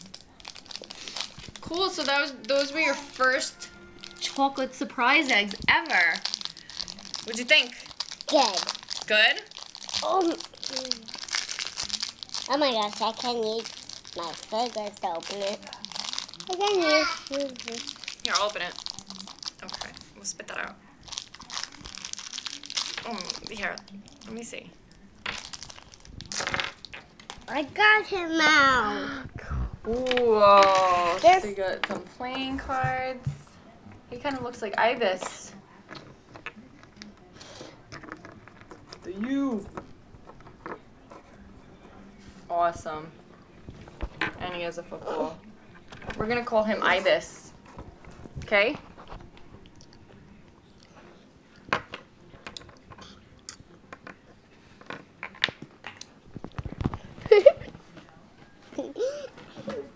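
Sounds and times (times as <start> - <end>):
foil wrapper crinkling: 0.0 - 27.5.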